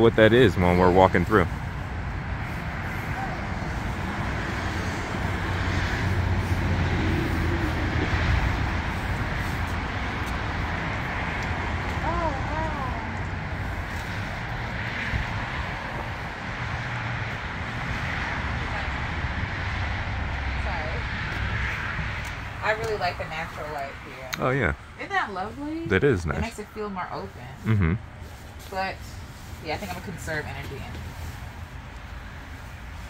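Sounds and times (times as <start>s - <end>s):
road traffic rumble: 0.0s - 33.0s.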